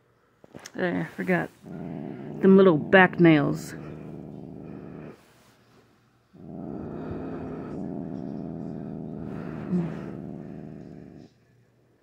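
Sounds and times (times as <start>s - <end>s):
cat growling low: 1.4s - 5.2s, 6.4s - 11.4s.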